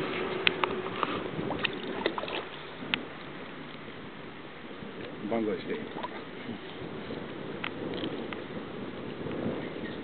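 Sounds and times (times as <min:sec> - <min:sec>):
fish splashing at water surface: 0:00.7 - 0:02.6.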